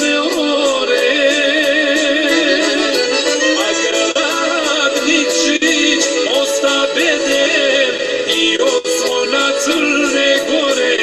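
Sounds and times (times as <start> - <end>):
man singing folk song: 0.0 - 3.0, 3.6 - 11.0
instrumental accompaniment: 0.0 - 11.0.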